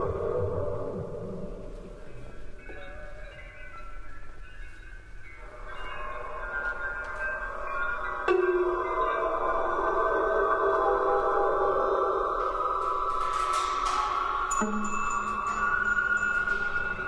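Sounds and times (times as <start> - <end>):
chamber music with held tones: 1.5 - 17.0.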